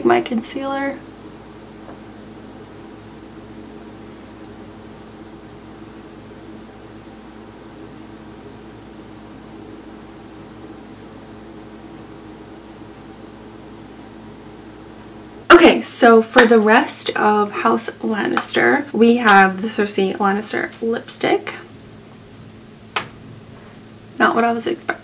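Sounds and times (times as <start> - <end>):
steady hum and hiss: 0.0 - 25.0.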